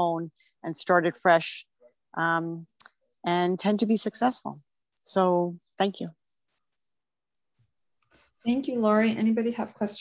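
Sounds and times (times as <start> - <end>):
faint insect chirping: 0.0 - 10.0.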